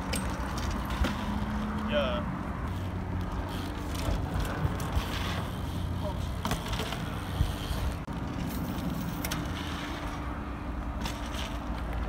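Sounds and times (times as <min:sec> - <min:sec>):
bike tyres rolling on asphalt: 0:00.0 - 0:12.0.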